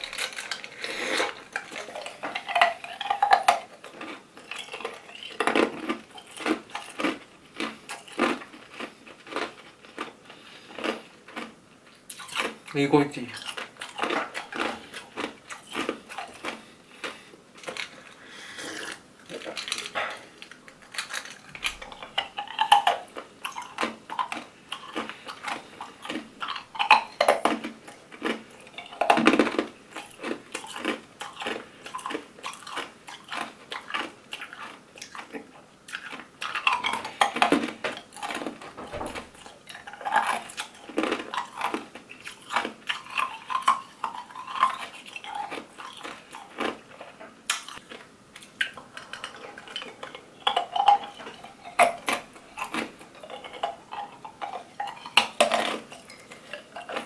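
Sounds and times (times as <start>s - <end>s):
ice cubes being chewed: 0.0s - 57.0s.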